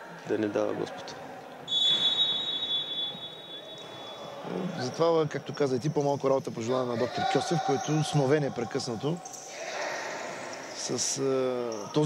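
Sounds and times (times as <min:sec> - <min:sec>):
referee's whistle blast: 0:01.7 - 0:04.2.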